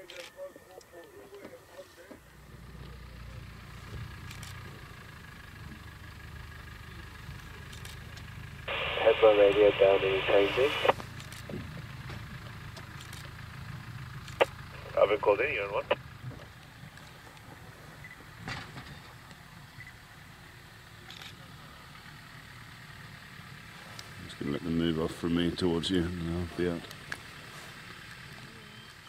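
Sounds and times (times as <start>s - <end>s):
vehicle engine idling hum: 0.1s - 29.0s
voices over two-way radio: 8.7s - 11.0s, 14.7s - 16.0s.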